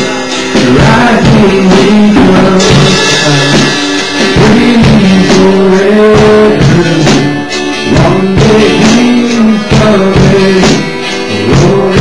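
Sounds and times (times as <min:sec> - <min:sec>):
drums: 0:00.0 - 0:12.0
guitar: 0:00.0 - 0:12.0
live rock band playing: 0:00.0 - 0:12.0.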